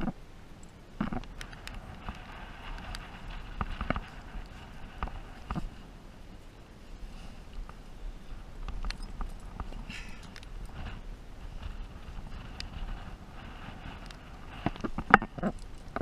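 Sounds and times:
wind buffeting microphone: 0.8 - 16.0.

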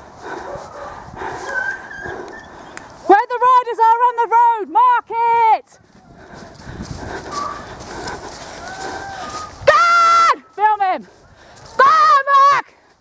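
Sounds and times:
hounds baying: 0.2 - 2.8, 7.1 - 9.6
footsteps running on grass: 5.7 - 13.0.

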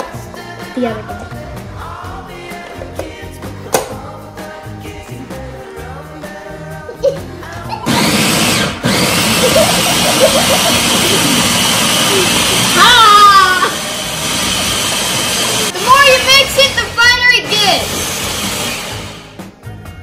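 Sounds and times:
electric food chopper running: 7.9 - 19.4
children shouting: 12.7 - 13.9.

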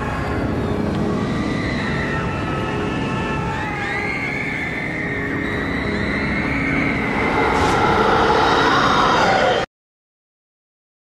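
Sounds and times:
wailing gliding tones: 0.0 - 9.7
dense rushing noise: 6.2 - 9.7.

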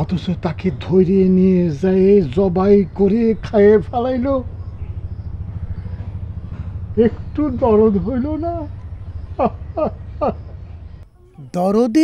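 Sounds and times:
low rumble with fast flutter: 0.0 - 11.1.

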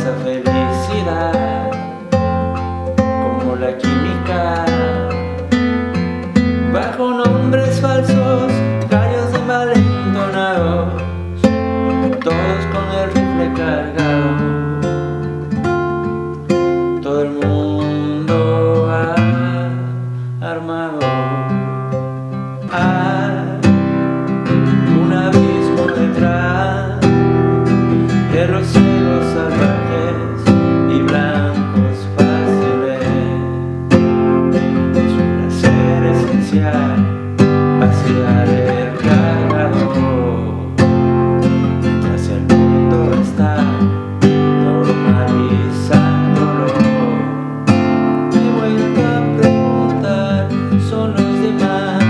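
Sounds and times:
classical guitar strumming chords: 0.0 - 52.0.

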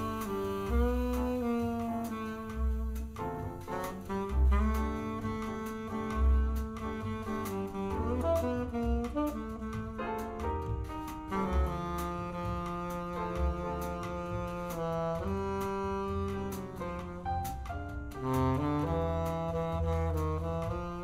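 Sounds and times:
slow jazz over loudspeakers: 0.0 - 21.0.

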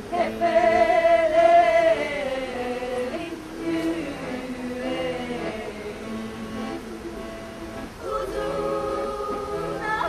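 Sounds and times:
accordion: 0.0 - 10.0
women's choir singing: 0.0 - 10.0.

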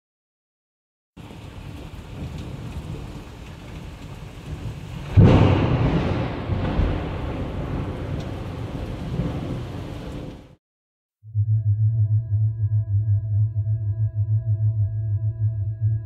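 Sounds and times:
steady rain: 1.2 - 10.6
thunderclap rumbling: 1.2 - 10.6.

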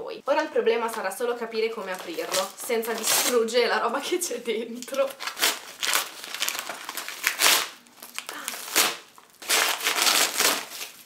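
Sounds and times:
padded envelope tearing and crinkling: 1.9 - 3.5, 4.9 - 11.0.

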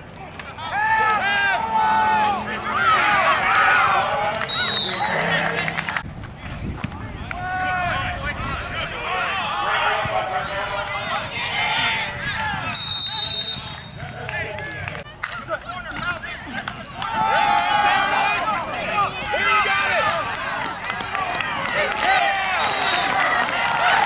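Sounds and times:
referee's whistle: 4.4 - 5.2, 12.7 - 14.0, 22.5 - 23.3
people calling out: 7.4 - 24.0.

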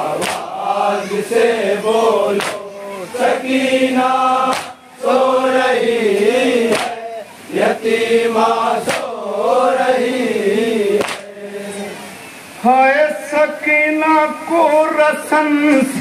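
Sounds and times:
men chanting in unison: 0.0 - 16.0
sharp slapping beats: 0.2 - 0.6, 2.4 - 2.7, 4.4 - 4.8, 6.7 - 7.0, 8.8 - 9.2, 11.0 - 11.3.

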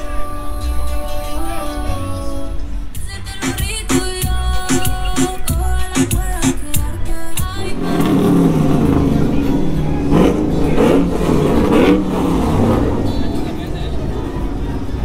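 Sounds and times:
music: 0.0 - 11.9
voices: 0.0 - 15.0
car engine revving: 7.6 - 15.0.

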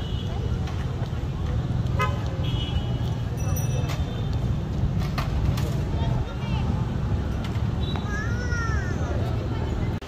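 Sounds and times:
people talking: 0.0 - 2.4, 5.4 - 7.2, 7.9 - 10.0
road traffic rumble: 0.0 - 10.0.

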